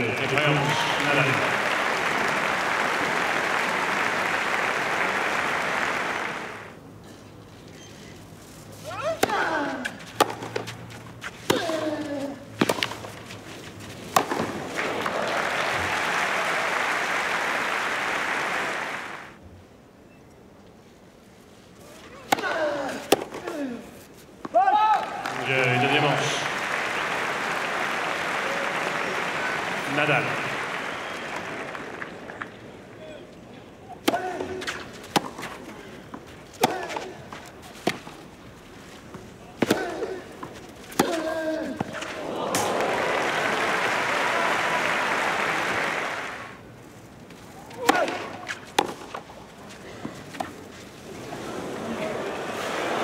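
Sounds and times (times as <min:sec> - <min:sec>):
tennis ball struck by racket: 0:09.2 - 0:10.7, 0:12.6 - 0:13.2, 0:14.1 - 0:14.9, 0:34.0 - 0:35.6, 0:36.6 - 0:38.2, 0:39.6 - 0:40.2, 0:40.9 - 0:42.7, 0:47.8 - 0:49.2.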